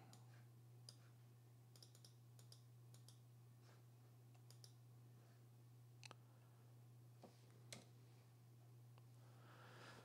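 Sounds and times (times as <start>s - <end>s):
faint computer mouse clicks: 1.7s - 3.2s, 4.4s - 4.8s.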